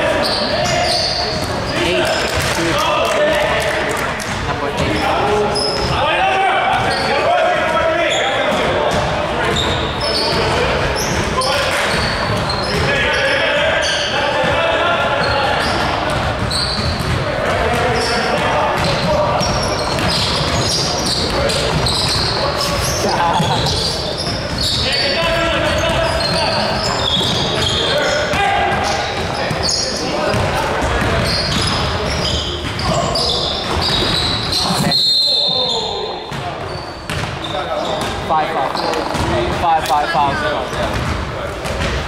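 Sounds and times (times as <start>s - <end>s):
sneakers squeaking: 0.0s - 3.0s, 4.2s - 42.0s.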